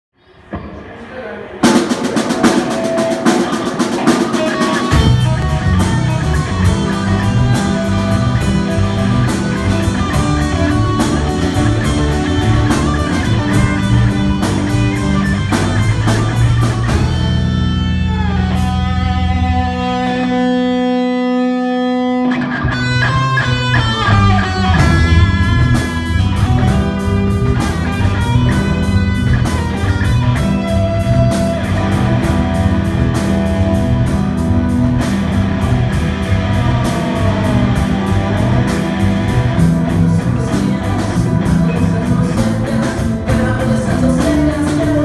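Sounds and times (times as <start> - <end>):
drum kit: 1.6 - 20.8, 22.3 - 45.0
electric guitars: 1.6 - 45.0
bass guitar: 1.7 - 45.0.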